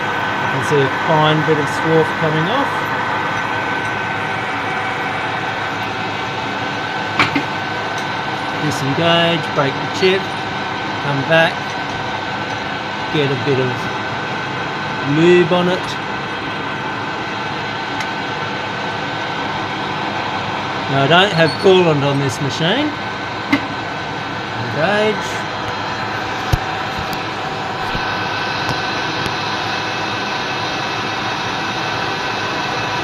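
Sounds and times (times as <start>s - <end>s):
metal lathe drilling with whine: 0.0s - 33.0s.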